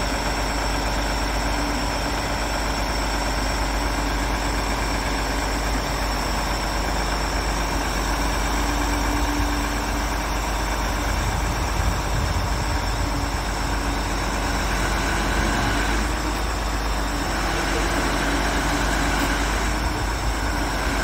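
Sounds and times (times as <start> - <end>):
diesel truck engine idling: 0.0 - 21.0
hydraulic crane whine: 0.0 - 21.0.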